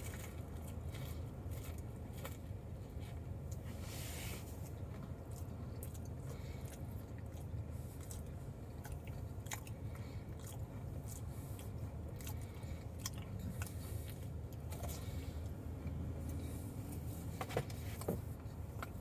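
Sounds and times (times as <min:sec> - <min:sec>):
person chewing: 0:00.0 - 0:19.0.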